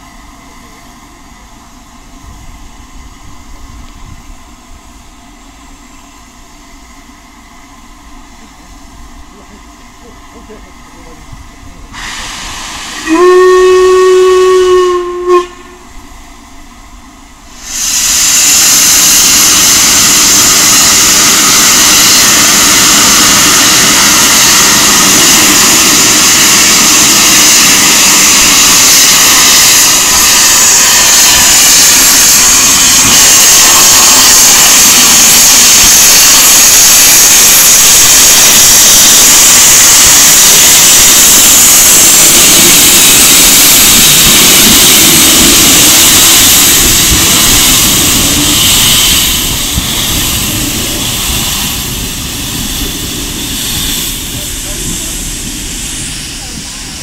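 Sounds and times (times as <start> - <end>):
steam hissing: 0.0 - 57.0
steam locomotive whistle: 12.0 - 16.0, 17.6 - 55.3.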